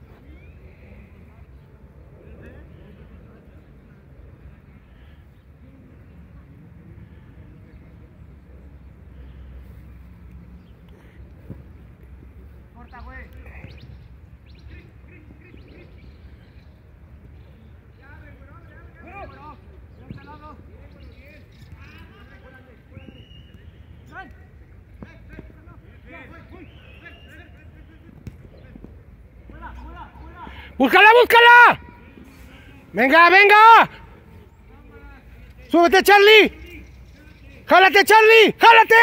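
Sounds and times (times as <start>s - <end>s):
distant shouts from footballers: 18.0s - 28.9s, 29.5s - 39.0s.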